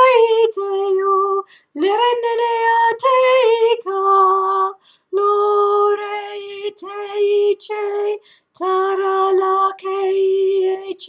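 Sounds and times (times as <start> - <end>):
woman singing unaccompanied: 0.0 - 11.0.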